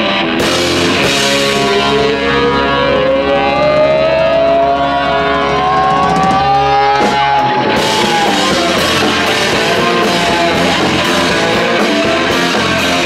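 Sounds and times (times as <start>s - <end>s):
drums crashing: 0.0s - 4.0s, 5.5s - 13.0s
live rock band playing loudly: 0.0s - 13.0s.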